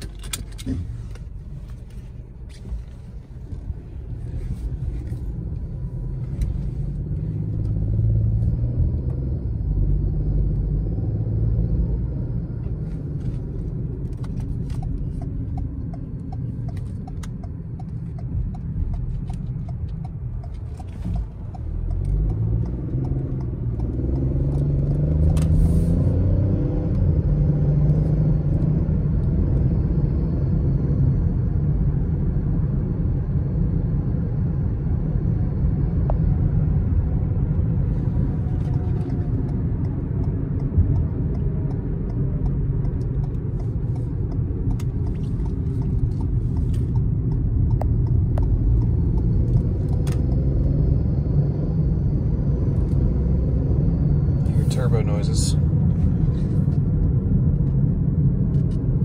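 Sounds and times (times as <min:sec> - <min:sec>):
car engine: 0:00.0 - 0:59.0
road and tyre noise: 0:00.0 - 0:59.0.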